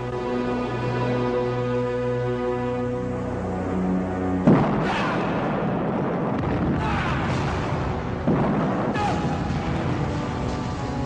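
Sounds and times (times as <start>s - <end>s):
gunfire: 4.4s - 10.0s
sharp blast: 4.4s - 10.2s
explosions rumbling: 4.4s - 10.8s.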